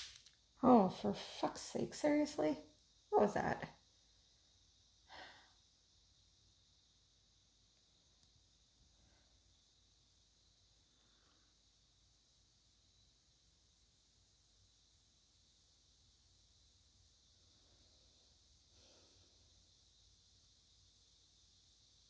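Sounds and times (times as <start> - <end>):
faint steady hiss: 0.0 - 22.0
person exhaling: 5.1 - 5.6.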